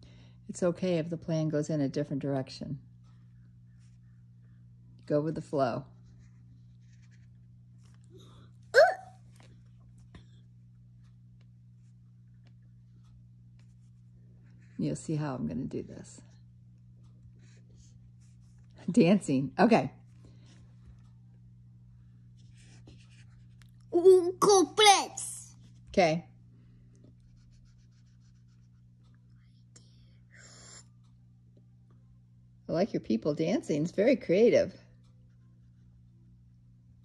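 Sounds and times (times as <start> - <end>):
steady low hum: 0.0 - 37.0
young child's high vocal sound: 8.7 - 9.1
marker scratching on paper: 22.4 - 23.6, 27.3 - 28.8.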